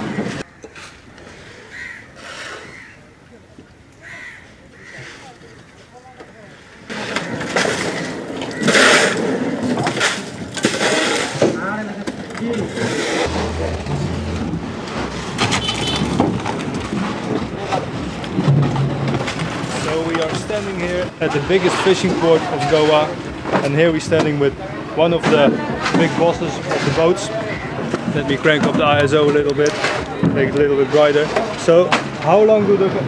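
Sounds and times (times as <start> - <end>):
background voices of workers: 0.0 - 33.0
scraping and knocking: 6.9 - 24.5.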